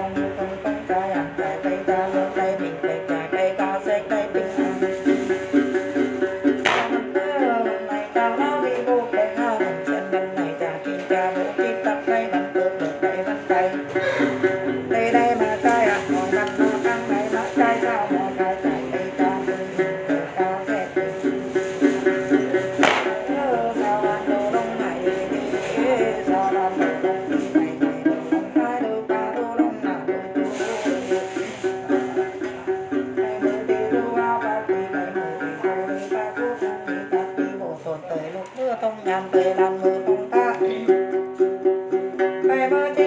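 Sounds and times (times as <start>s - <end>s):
plucked lute pattern: 0.0s - 43.0s
woman chanting: 7.2s - 21.2s, 21.9s - 40.9s.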